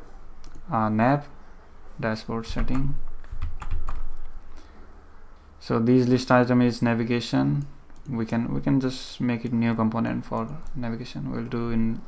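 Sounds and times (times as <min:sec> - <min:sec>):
computer keyboard keys clicking: 0:02.6 - 0:04.3, 0:10.3 - 0:10.8.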